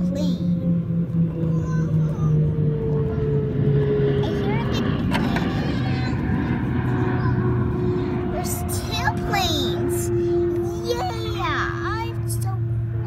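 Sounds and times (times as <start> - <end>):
airplane flying over: 0.0 - 13.0.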